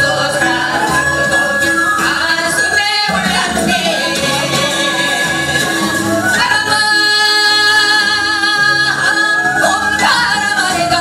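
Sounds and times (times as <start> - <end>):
accompaniment music with steady beat: 0.0 - 11.0
women singing folk song: 0.0 - 11.0.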